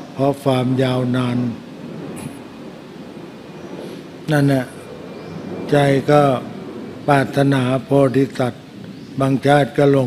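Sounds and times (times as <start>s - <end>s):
soft breath hiss: 0.0s - 9.8s
low microphone background noise: 0.0s - 10.0s.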